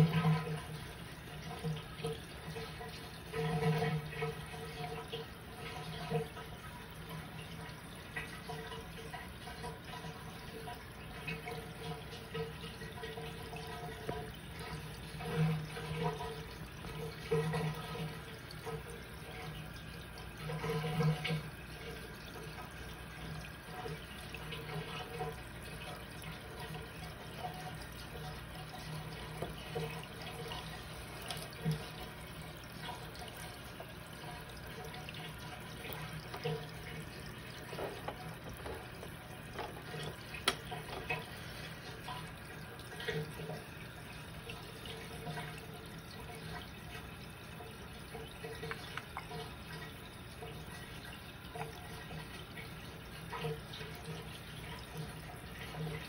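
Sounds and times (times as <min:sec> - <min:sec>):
aquarium water gurgling and bubbling: 0:00.0 - 0:56.0
low steady hum: 0:00.0 - 0:56.0.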